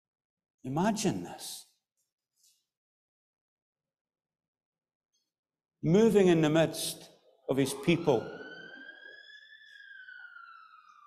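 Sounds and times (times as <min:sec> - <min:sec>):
faint high gliding whistle: 0:07.5 - 0:11.0.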